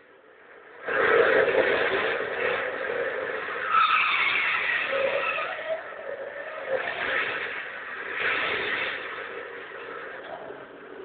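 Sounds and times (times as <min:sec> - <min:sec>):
car engines running hard: 0:00.0 - 0:11.0
tyres squealing: 0:03.4 - 0:09.0.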